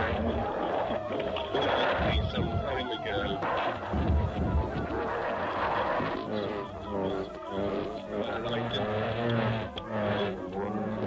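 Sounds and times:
indistinct voices: 0:00.0 - 0:11.0
pitched and noisy sounds: 0:00.0 - 0:11.0
steady low hum: 0:00.0 - 0:11.0.

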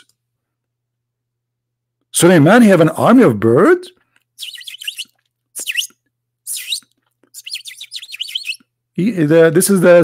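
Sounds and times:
small bird chirping: 0:04.4 - 0:08.7.

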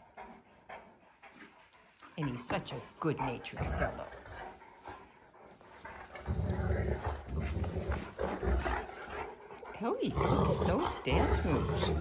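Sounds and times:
dogs play-growling: 0:00.0 - 0:12.0.

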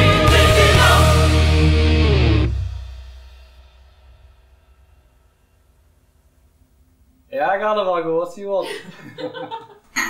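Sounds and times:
metal band with distorted guitar: 0:00.0 - 0:03.0.

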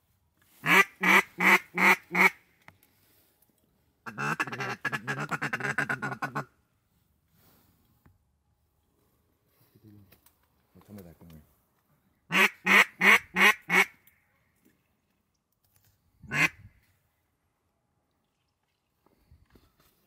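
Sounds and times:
duck call quacks: 0:00.6 - 0:02.4, 0:04.1 - 0:06.5, 0:12.3 - 0:14.0, 0:16.3 - 0:16.6
rapid duck call chatter: 0:12.3 - 0:13.9.

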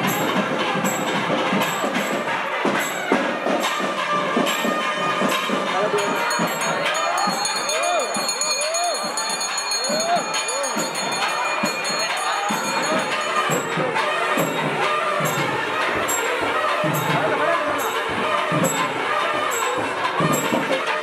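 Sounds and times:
crowd voices: 0:00.0 - 0:21.0
music: 0:00.0 - 0:21.0
temple bells ringing fast: 0:00.0 - 0:21.0.

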